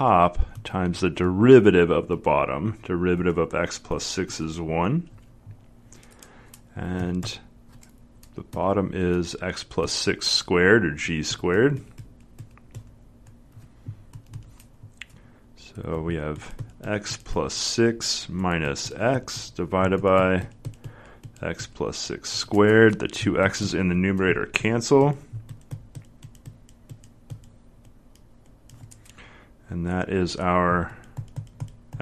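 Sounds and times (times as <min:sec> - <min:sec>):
stylus tapping on tablet screen: 0:18.6 - 0:21.7, 0:25.3 - 0:29.1, 0:31.0 - 0:32.0.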